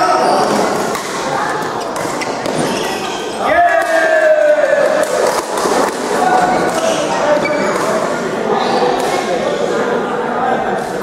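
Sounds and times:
shoe squeaking on gym floor: 1.8 - 3.4, 6.8 - 7.8.

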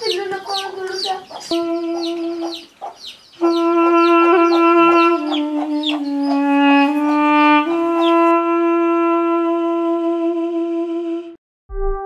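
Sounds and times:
chick peeping: 0.0 - 8.3
wind instrument long notes: 1.5 - 2.6, 3.4 - 12.0.

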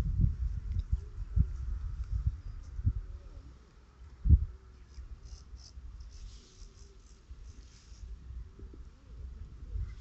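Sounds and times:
wind buffeting microphone: 0.0 - 3.4, 8.0 - 10.0
faint high scratchy sounds: 4.6 - 10.0.

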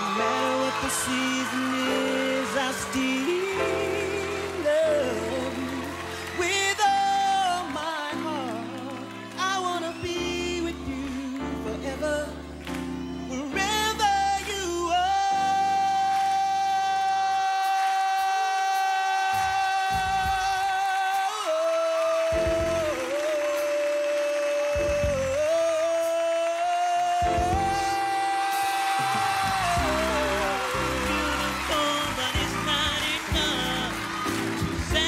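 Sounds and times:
man singing a long high note: 0.0 - 12.4, 13.3 - 35.0
live band playing: 0.0 - 35.0
male vocal group singing: 27.3 - 35.0.

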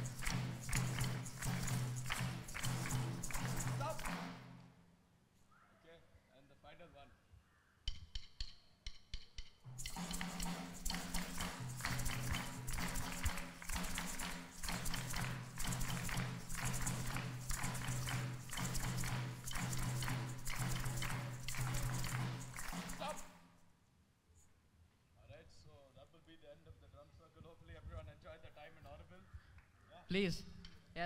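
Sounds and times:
group clapping a rhythm: 0.0 - 4.6, 9.7 - 23.4
stick clicks: 0.0 - 4.7, 7.9 - 23.3.

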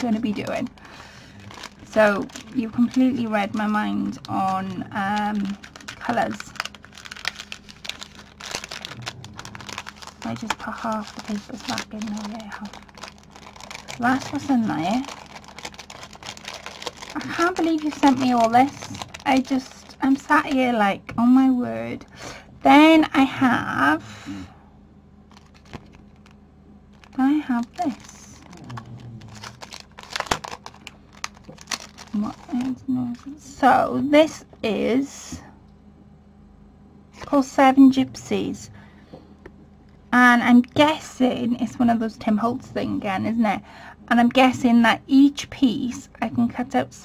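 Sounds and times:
cellophane bag crinkling: 0.0 - 20.6, 25.3 - 32.8.

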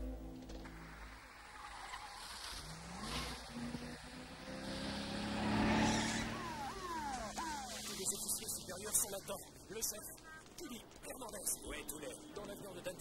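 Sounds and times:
car engine accelerating: 0.0 - 8.9
police siren whooping: 5.5 - 9.0.

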